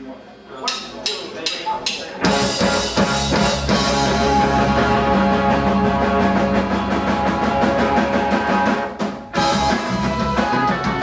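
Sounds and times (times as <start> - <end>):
drumstick count-in hits: 0.6 - 3.8
punk rock band playing: 1.8 - 11.0.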